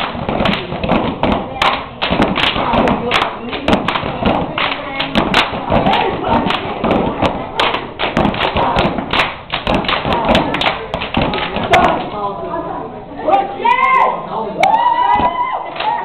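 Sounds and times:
stomping and clapping: 0.0 - 12.2, 14.6 - 16.0.

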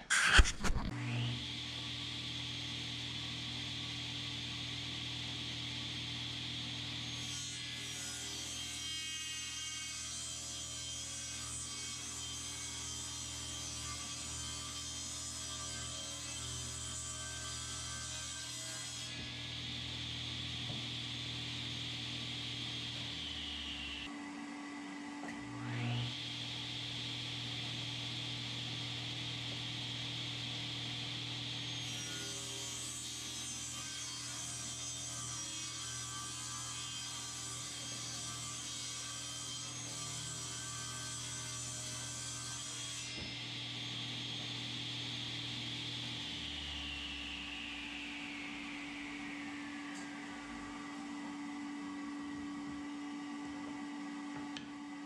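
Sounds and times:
saw ripping wooden board: 0.0 - 1.0
table saw motor whine: 0.1 - 55.0.

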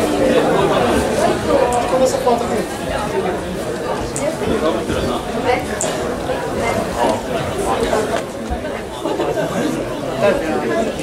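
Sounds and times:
babble of many voices: 0.0 - 11.0.

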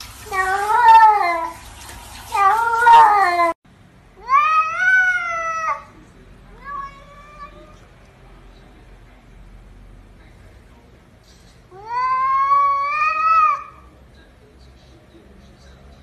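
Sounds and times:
cat meowing: 0.2 - 1.7, 2.3 - 3.6, 4.2 - 7.8, 11.7 - 13.9.

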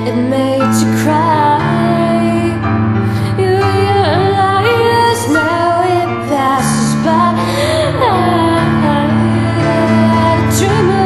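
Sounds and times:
piano chords: 0.0 - 11.0
woman singing: 0.0 - 11.0.

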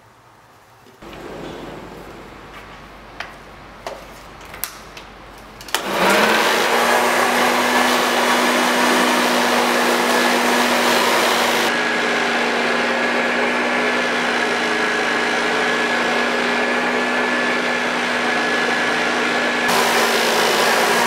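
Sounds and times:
vacuum cleaner motor running: 5.7 - 21.0.

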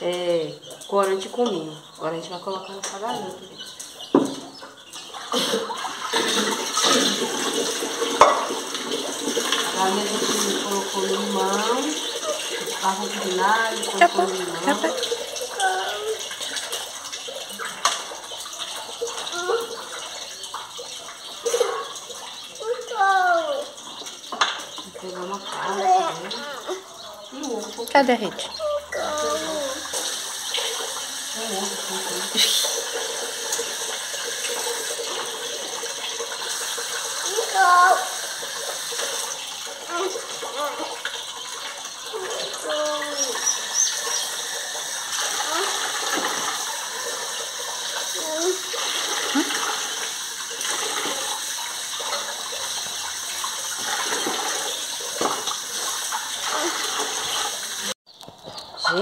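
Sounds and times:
tap water running into metal pot: 0.0 - 58.0
chicken being washed by hand: 0.0 - 59.0.

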